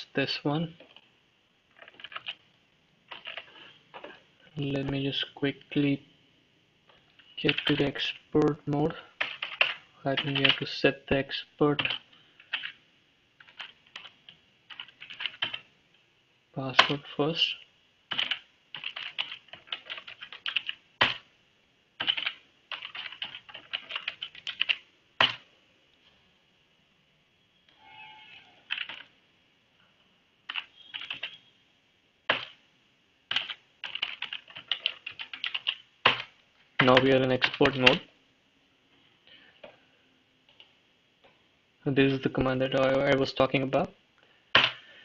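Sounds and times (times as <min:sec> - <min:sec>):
computer keyboard typing: 0:01.7 - 0:02.4, 0:03.1 - 0:03.6, 0:07.2 - 0:10.7, 0:11.7 - 0:12.8, 0:13.4 - 0:15.7, 0:18.1 - 0:21.3, 0:22.0 - 0:25.5, 0:28.6 - 0:29.1, 0:30.5 - 0:31.4, 0:32.3 - 0:32.6, 0:33.3 - 0:38.1.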